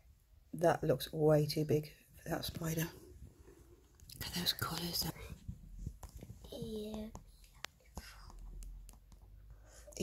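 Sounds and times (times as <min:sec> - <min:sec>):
person whispering softly: 0:04.0 - 0:08.8.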